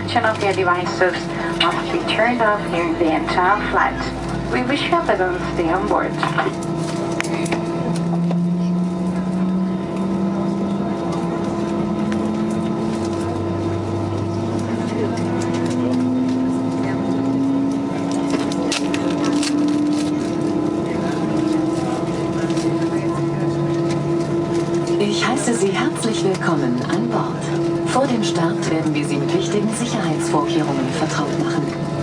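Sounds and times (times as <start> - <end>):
cabin air hum: 0.0 - 9.2
jet engine whine rising: 0.0 - 32.0.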